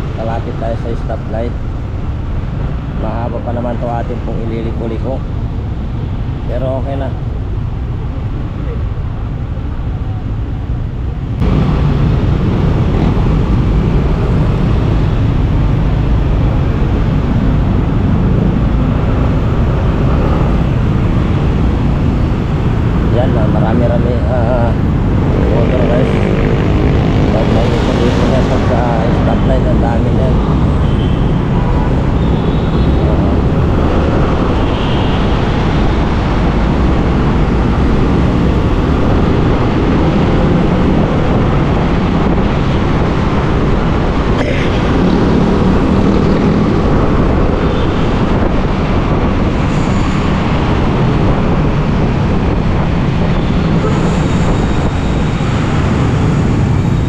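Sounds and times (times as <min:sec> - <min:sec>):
city traffic: 0:00.0 - 0:57.0.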